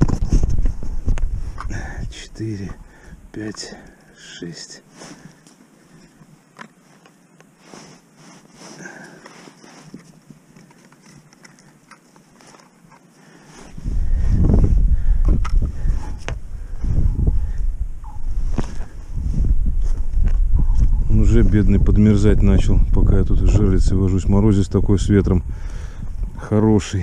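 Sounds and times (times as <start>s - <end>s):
wind buffeting microphone: 0.0s - 3.3s, 13.7s - 27.0s
gloved hands clicking and rustling: 8.8s - 13.1s.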